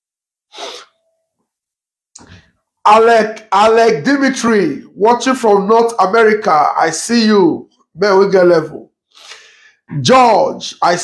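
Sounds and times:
man's sharp breathy vocal burst: 0.5s - 1.0s, 9.1s - 9.9s.

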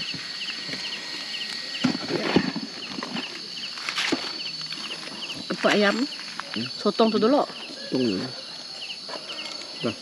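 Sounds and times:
high insect drone: 0.0s - 10.0s
insects chirping: 0.0s - 10.0s.

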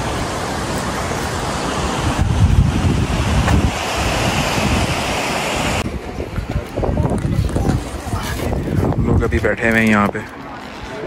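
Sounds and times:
wind buffeting microphone: 1.2s - 10.2s.

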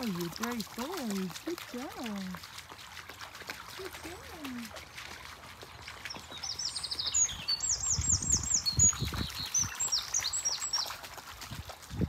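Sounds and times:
stream trickling: 0.0s - 12.0s
songbird singing: 5.7s - 11.0s.

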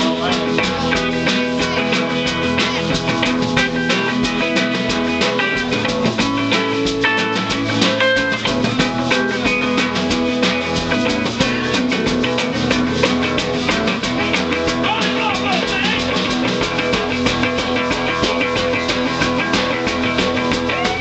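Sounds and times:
drum kit beat: 0.0s - 21.0s
electric guitar playing: 0.0s - 21.0s.

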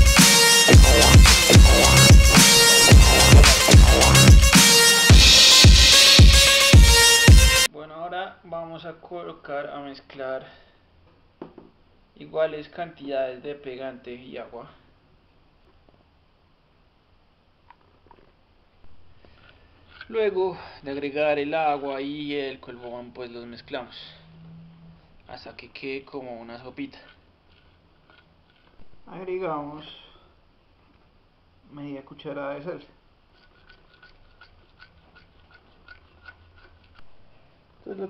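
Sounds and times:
soft knock: 11.4s - 11.8s
glue pouring and stirring: 33.2s - 37.2s.

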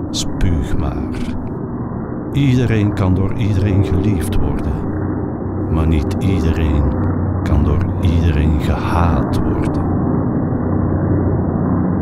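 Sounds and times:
muffled rumbling drone: 0.0s - 12.0s.

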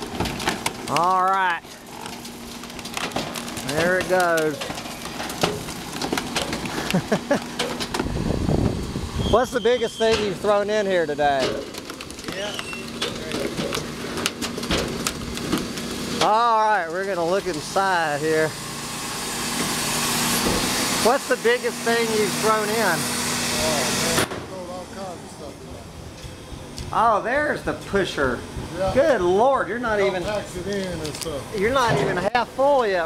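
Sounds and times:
sharp wood snaps: 0.0s - 8.1s, 11.4s - 17.2s, 30.7s - 31.3s
wooden frame cracking and splintering: 0.0s - 8.1s, 10.2s - 17.6s
garbage truck low rumble: 0.0s - 33.0s
garbage truck hiss: 17.7s - 24.3s.

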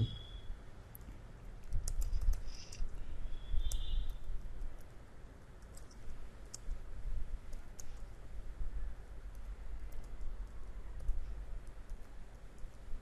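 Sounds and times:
computer keyboard typing: 0.9s - 2.9s, 5.6s - 6.8s, 7.4s - 8.1s, 9.3s - 13.0s.

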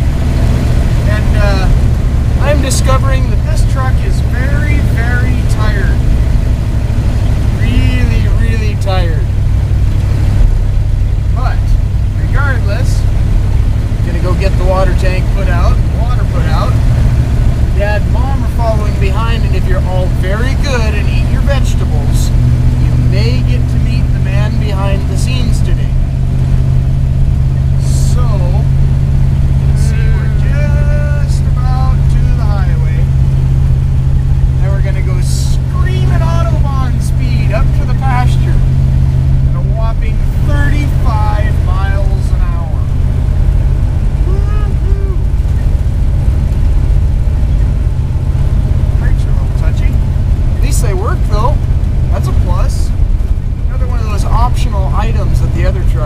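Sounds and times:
truck engine droning: 0.0s - 56.0s
man talking: 1.0s - 6.2s, 7.5s - 9.4s, 11.3s - 13.1s, 14.0s - 16.9s, 17.7s - 26.0s, 27.6s - 28.8s, 29.6s - 33.2s, 34.6s - 38.8s, 39.5s - 43.1s, 44.2s - 45.8s, 48.8s - 53.0s, 53.6s - 56.0s.

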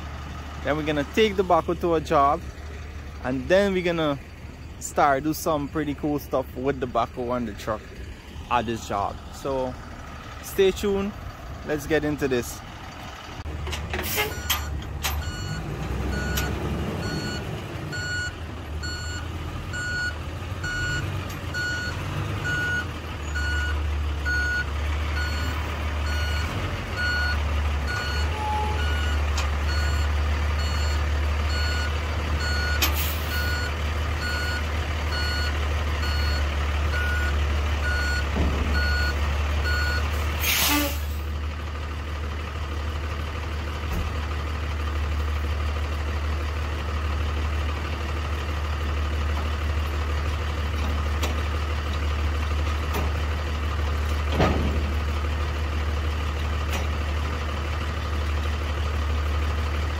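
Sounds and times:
diesel engine idling: 0.0s - 59.9s
air brakes hissing: 14.0s - 14.5s, 32.8s - 33.4s, 40.2s - 41.3s
truck reverse alarm beeping: 14.0s - 41.2s.

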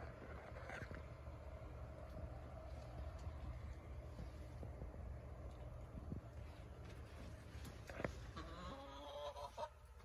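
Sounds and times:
chicken calling: 8.3s - 9.9s.

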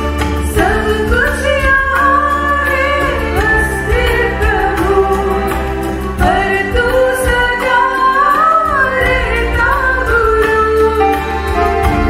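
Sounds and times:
bass: 0.0s - 12.0s
guitar: 0.0s - 12.0s
keyboard: 0.0s - 12.0s.

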